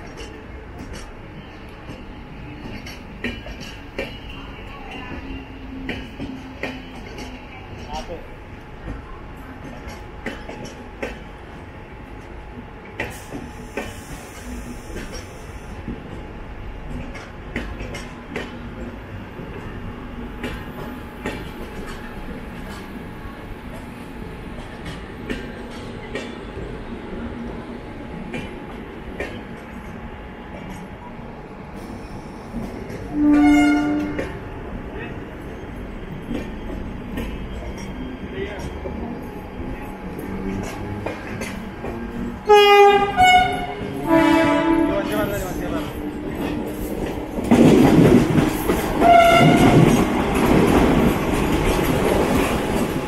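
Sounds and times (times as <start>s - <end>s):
train rumbling on rails: 0.0s - 53.0s
train horn: 33.1s - 34.4s, 42.4s - 45.2s, 49.0s - 49.9s.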